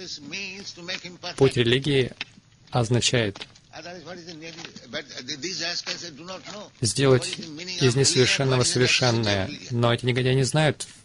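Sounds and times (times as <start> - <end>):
man speaking: 0.0 - 11.0
narration voice: 0.0 - 11.0.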